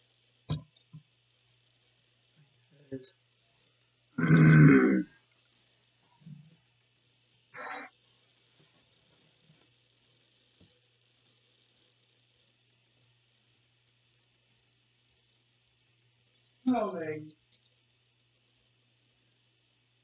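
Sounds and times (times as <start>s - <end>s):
man making throat noise: 4.2s - 5.1s, 7.6s - 7.9s.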